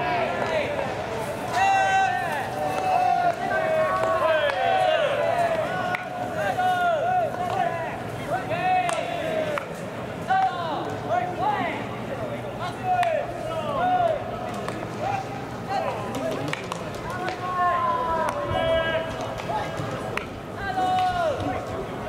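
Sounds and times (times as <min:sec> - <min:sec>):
players shouting calls: 0:00.0 - 0:22.0.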